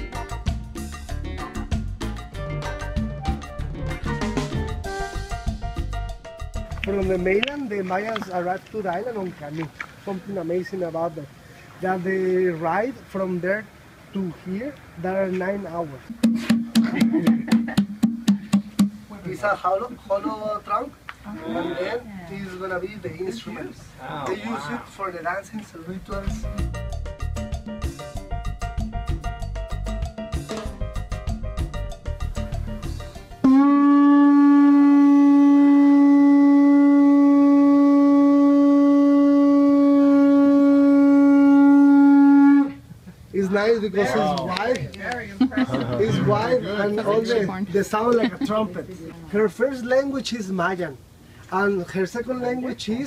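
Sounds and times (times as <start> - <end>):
upbeat latin music with drums: 0.0 - 9.5, 16.1 - 20.7, 24.3 - 35.8, 43.4 - 50.6
slit drum wooden tocks: 16.1 - 19.0
conch shell trumpet blowing: 33.4 - 42.9.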